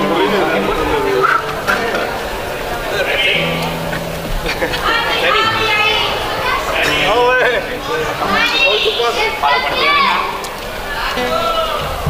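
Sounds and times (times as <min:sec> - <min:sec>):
high-pitched voices calling out: 0:00.0 - 0:12.0.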